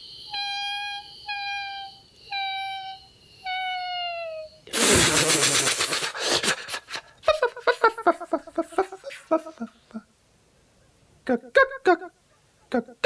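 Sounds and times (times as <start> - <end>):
faint high steady tone: 0.0 - 4.7
loud rasping pulsing hiss: 4.7 - 7.1.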